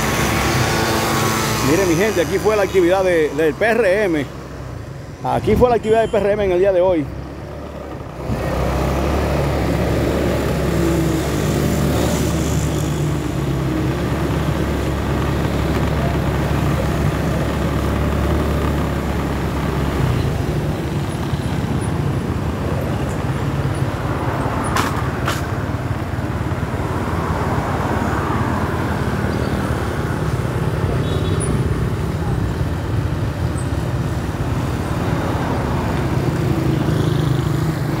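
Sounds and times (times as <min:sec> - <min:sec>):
vehicle engine and road noise: 0:00.0 - 0:38.0.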